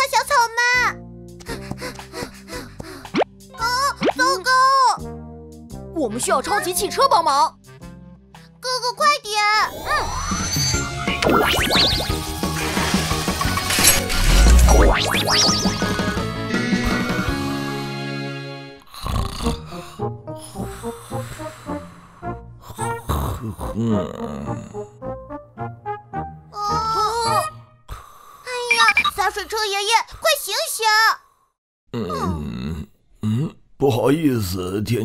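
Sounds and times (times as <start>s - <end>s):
children's background music: 0.0s - 13.6s, 25.0s - 27.8s
cartoon voice wordless sounds: 3.6s - 5.0s, 6.0s - 7.5s, 26.6s - 27.6s, 28.5s - 31.2s, 32.0s - 33.6s
cartoon rising pop: 10.4s - 12.2s, 13.9s - 16.1s
cartoon snoring: 18.8s - 22.0s, 22.6s - 25.0s, 31.9s - 33.6s.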